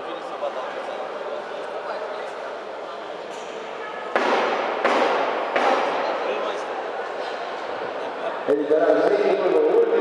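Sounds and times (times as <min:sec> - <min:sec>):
loud echoing bangs: 0:04.1 - 0:06.6.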